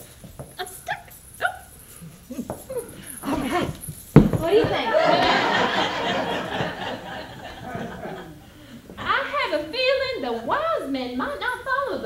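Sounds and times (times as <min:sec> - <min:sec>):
audience laughter: 0:04.7 - 0:09.3.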